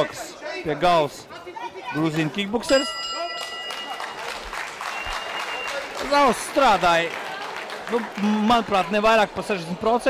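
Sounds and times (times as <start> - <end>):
crowd chatter: 0.0 - 10.0
ringside bell ringing: 2.6 - 5.7
crowd applause: 3.3 - 9.7.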